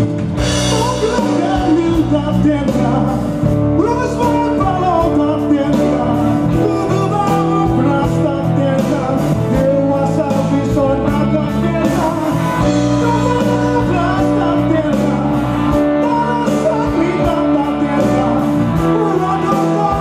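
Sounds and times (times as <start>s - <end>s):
bass guitar: 0.0s - 20.0s
electric guitar: 0.0s - 20.0s
live band playing: 0.0s - 20.0s
man singing into a microphone: 0.4s - 20.0s.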